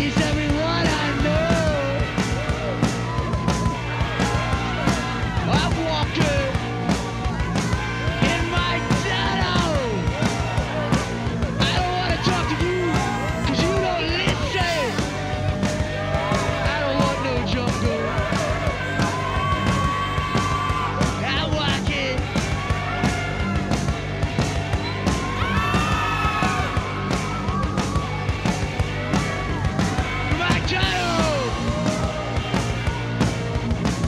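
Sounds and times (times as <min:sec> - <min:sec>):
fast drumbeat: 0:00.0 - 0:34.0
punk rock band playing: 0:00.0 - 0:34.0
person singing or shouting: 0:05.3 - 0:06.7, 0:07.4 - 0:10.9, 0:11.6 - 0:15.2, 0:29.5 - 0:32.3.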